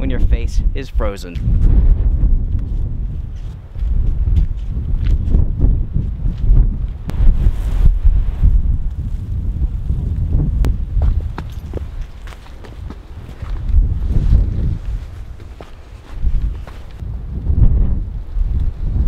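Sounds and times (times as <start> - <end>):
wind buffeting microphone: 0.0 - 19.0
footsteps on icy trail: 2.6 - 7.0, 10.7 - 17.0.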